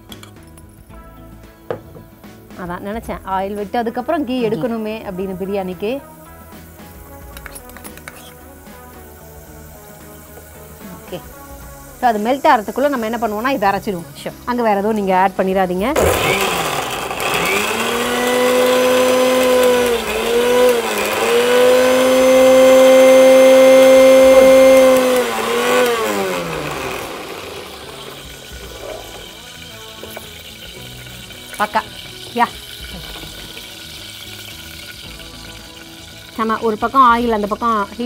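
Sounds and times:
mixer grinder motor whine: 0:16.0 - 0:38.0.

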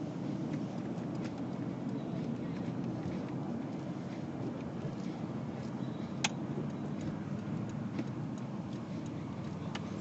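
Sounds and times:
car engine and road rumble: 0:00.0 - 0:10.0
faint tick: 0:05.9 - 0:10.0.

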